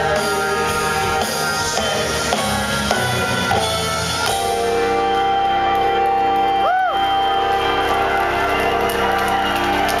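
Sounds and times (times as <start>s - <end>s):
rock band holding a chord: 0.0s - 10.0s
faint crowd cheering: 4.8s - 10.0s.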